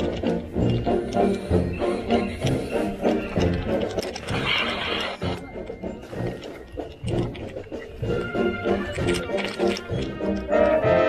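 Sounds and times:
marching band parade tune: 0:05.2 - 0:11.0.

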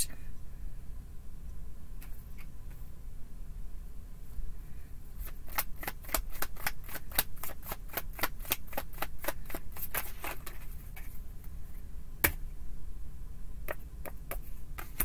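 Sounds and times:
cards being shuffled by hand: 0:05.2 - 0:11.2, 0:13.8 - 0:15.0.

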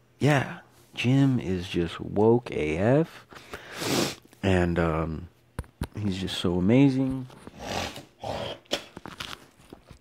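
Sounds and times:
man breathing in: 0:03.4 - 0:04.2.

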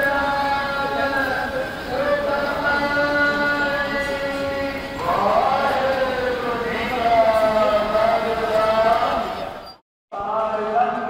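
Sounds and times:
voices chanting devotional song: 0:00.0 - 0:11.0.

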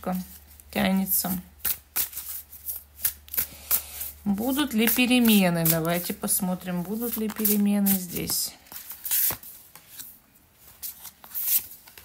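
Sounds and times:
cards being shuffled: 0:01.6 - 0:12.0.

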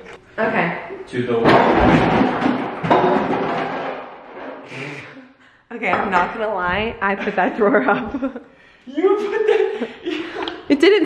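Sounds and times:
kitchen drawer falling and clattering: 0:01.4 - 0:04.6.

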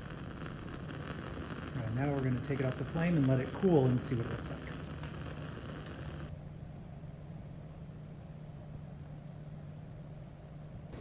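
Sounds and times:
bunsen burner flame hissing: 0:00.0 - 0:06.3
steady low hum: 0:00.0 - 0:11.0.

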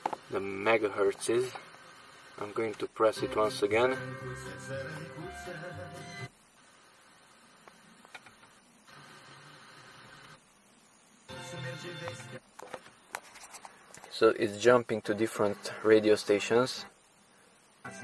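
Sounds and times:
car radio playing music: 0:03.0 - 0:06.3, 0:11.3 - 0:12.4.

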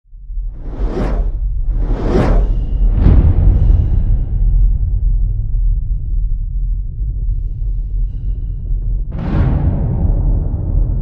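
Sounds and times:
deep rumble: 0:00.1 - 0:11.0
whoosh: 0:00.4 - 0:04.8.

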